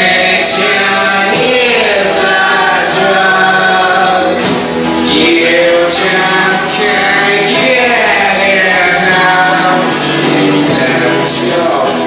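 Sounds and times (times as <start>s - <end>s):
chorus singing: 0.0s - 12.0s
musical accompaniment: 0.0s - 12.0s.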